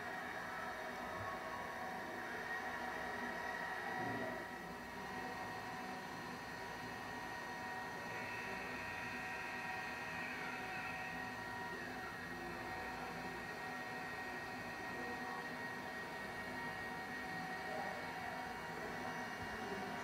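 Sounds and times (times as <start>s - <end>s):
faint steady whir and hiss: 0.0s - 20.0s.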